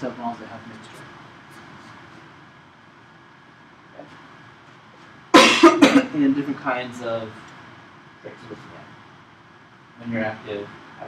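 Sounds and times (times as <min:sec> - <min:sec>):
person coughing: 0:05.3 - 0:06.2.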